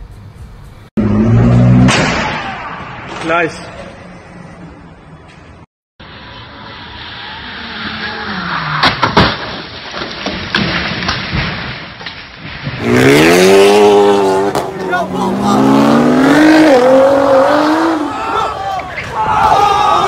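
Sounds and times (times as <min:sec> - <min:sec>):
car engine with falling pitch: 0:01.0 - 0:02.8
sports car engine revving: 0:12.8 - 0:18.1.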